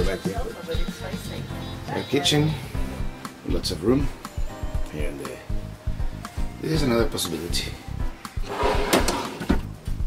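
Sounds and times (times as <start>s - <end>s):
background music: 0.0s - 10.0s
wooden drawer being handled: 8.5s - 9.6s.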